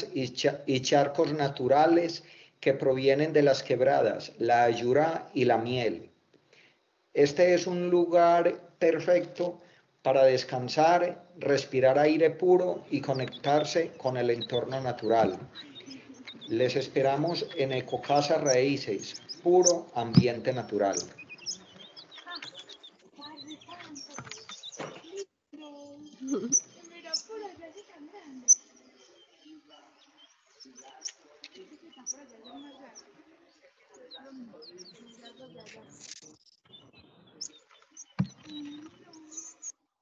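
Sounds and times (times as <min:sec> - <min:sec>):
monkeys chirping and whistling: 0:12.8 - 0:25.2, 0:26.0 - 0:27.4, 0:28.5 - 0:31.2, 0:36.9 - 0:39.7
high-pitched animal chirps: 0:26.0 - 0:27.4, 0:28.5 - 0:28.7, 0:37.4 - 0:39.7
low monkey call: 0:26.2 - 0:27.4.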